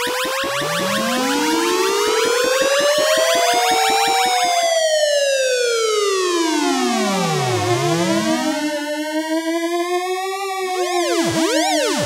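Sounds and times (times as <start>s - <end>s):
pulsing electronic beat: 10.8s - 12.0s
siren-like synthesizer tone: 10.8s - 12.0s.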